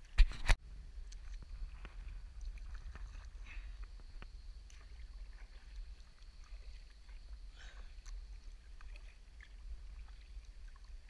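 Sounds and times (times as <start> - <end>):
wind rumble on microphone: 0.0 - 11.0
paddle splashes and drips: 0.9 - 11.0.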